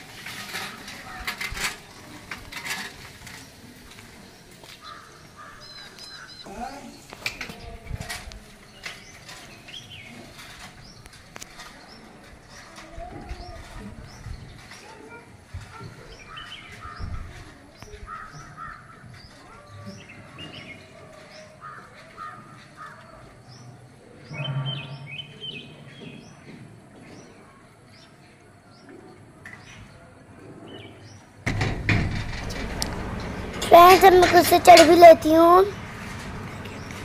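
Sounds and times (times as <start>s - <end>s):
birds chirping: 3.3s - 7.8s, 17.8s - 30.0s
harsh crow-like calls: 4.8s - 6.4s.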